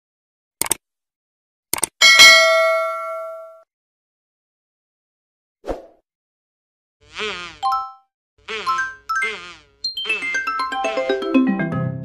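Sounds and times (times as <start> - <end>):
bright bell ding: 2.0 - 3.6.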